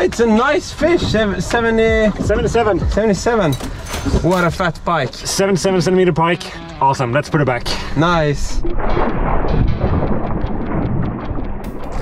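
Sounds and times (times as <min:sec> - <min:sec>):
wind rumbling on microphone: 0:00.0 - 0:04.3, 0:08.2 - 0:12.0.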